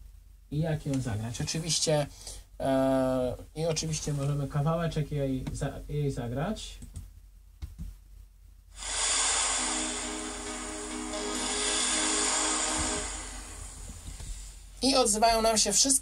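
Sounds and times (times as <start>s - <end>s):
synthesized instrumental music: 8.9s - 14.2s.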